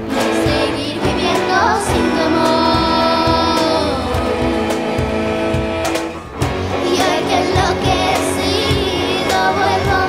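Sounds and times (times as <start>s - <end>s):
acoustic guitars: 0.0s - 10.0s
percussion: 0.0s - 10.0s
violins: 0.0s - 10.0s.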